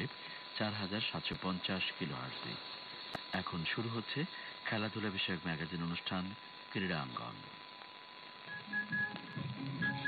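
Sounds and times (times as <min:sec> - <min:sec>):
radio static: 0:00.0 - 0:10.0.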